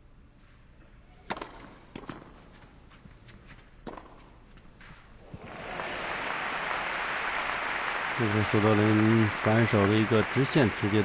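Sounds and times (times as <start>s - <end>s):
tennis ball struck by rackets: 1.2s - 2.4s, 3.8s - 4.4s
crowd applause: 5.3s - 11.0s.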